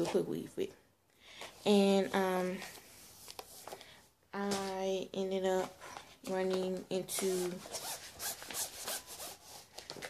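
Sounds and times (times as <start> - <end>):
scratchy rustling and rubbing: 7.2 - 10.0.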